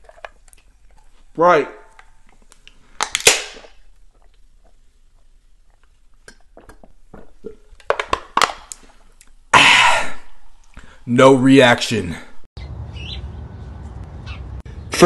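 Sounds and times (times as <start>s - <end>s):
gulping clicks: 0.0s - 1.3s, 3.6s - 9.4s
soda can cracking open: 2.0s - 3.8s, 7.8s - 9.4s
breathy cough-like burst: 9.6s - 10.3s.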